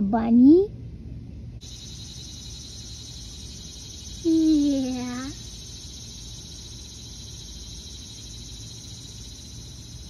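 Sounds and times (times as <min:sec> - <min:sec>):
insects chirring: 0:01.6 - 0:10.0.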